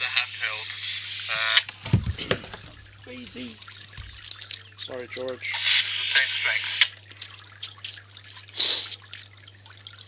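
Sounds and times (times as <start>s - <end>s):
hissy speech from radio speaker: 0.0s - 1.7s, 4.9s - 6.9s
burst of radio static: 5.4s - 6.9s.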